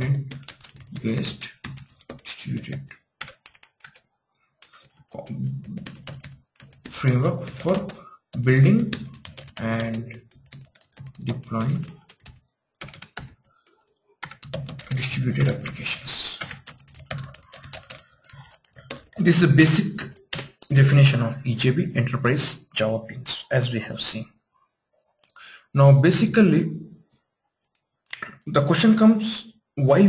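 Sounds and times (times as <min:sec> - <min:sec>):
typing on keyboard: 0:00.0 - 0:04.0, 0:04.6 - 0:21.0.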